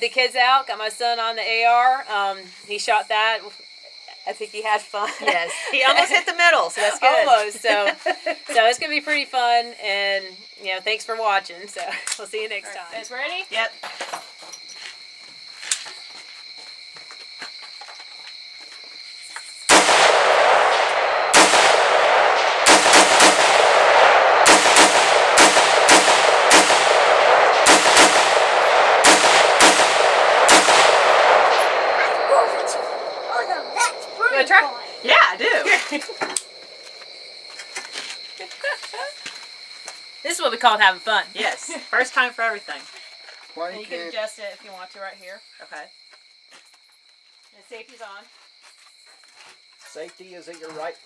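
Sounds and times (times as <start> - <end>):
insect chirring: 0.0 - 51.0
rifle shots: 19.7 - 35.0.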